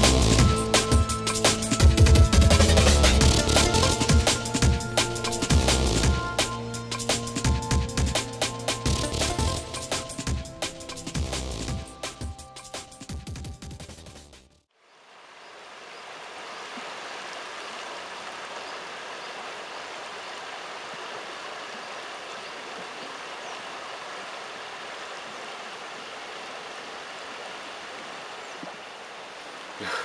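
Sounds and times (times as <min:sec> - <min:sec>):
river water rushing: 0:15.0 - 0:30.0.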